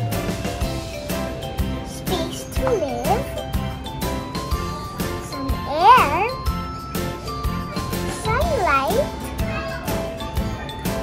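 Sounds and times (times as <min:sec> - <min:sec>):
tinkling bell-like music with beat: 0:00.0 - 0:11.0
child's voice gliding: 0:01.9 - 0:03.3, 0:05.3 - 0:06.4.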